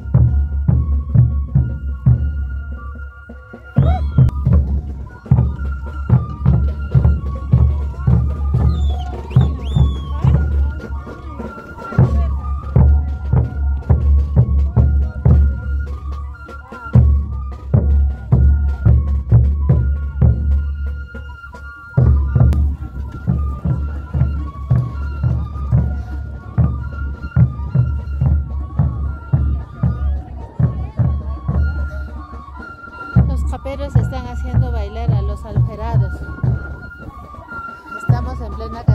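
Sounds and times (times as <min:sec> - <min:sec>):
folk music: 0:00.0 - 0:38.9
wind instruments high notes: 0:00.0 - 0:38.9
bass drum beating: 0:03.8 - 0:11.1, 0:11.9 - 0:16.1, 0:22.0 - 0:31.7, 0:33.2 - 0:37.2
heavy bass drum beat: 0:03.8 - 0:11.1.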